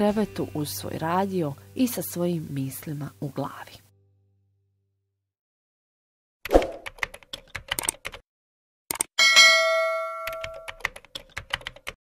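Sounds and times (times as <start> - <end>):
bright bell ding: 9.2 - 10.8.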